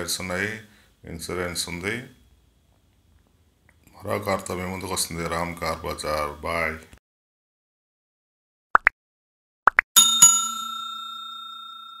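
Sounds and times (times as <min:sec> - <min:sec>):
notification bell dings: 0:10.0 - 0:12.0
ringing tone: 0:10.0 - 0:12.0.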